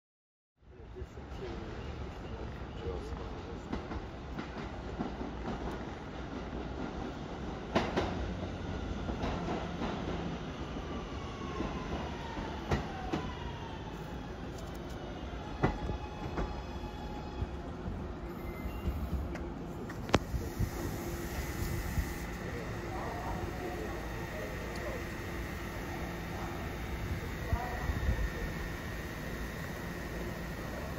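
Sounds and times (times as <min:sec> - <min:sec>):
train wheels rumbling on rail: 0:01.1 - 0:30.9.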